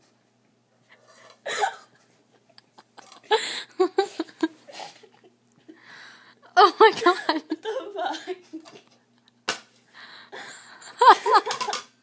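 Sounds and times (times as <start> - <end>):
women stifled laughter: 2.4 - 5.4, 6.6 - 9.0, 10.4 - 11.8.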